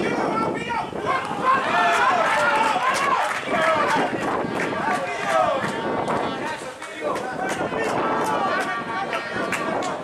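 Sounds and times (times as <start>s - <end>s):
men shouting: 0.1s - 9.5s.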